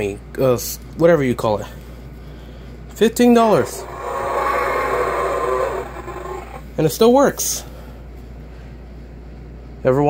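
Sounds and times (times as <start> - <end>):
toy dinosaur electronic roar: 3.4 - 6.7.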